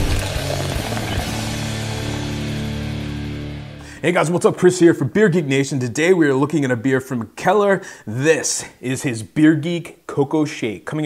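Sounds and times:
theme music with ringing chord: 0.1 - 3.8.

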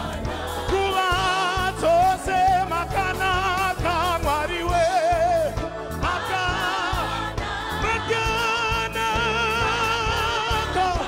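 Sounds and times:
gospel choir singing: 0.0 - 11.0
steady drum beat: 0.0 - 11.0.

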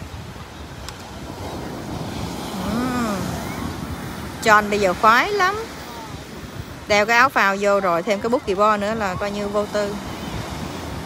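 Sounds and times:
ocean surf breaking: 0.0 - 11.0.

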